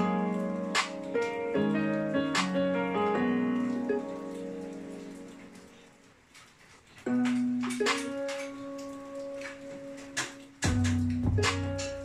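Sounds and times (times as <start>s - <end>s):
held keyboard chord: 0.0s - 5.9s
faint crackling hiss: 0.0s - 12.0s.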